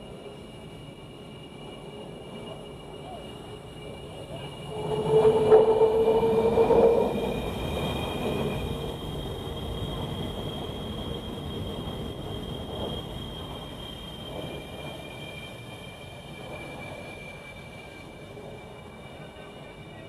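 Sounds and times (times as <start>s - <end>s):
jet engines high whine: 0.0s - 20.0s
low jet engine roar: 0.0s - 20.0s.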